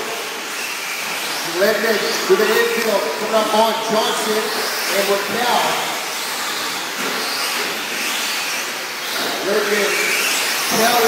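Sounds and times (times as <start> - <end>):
rc trucks whirring: 0.0 - 11.0.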